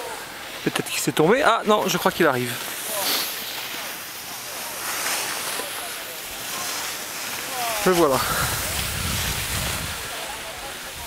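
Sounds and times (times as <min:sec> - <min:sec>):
wind on microphone: 0:08.2 - 0:10.2.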